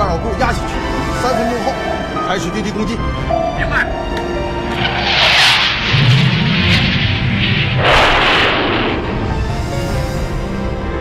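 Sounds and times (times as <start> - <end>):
deep jet rumble: 2.4 - 11.0
jet engine rushing noise: 4.5 - 10.6.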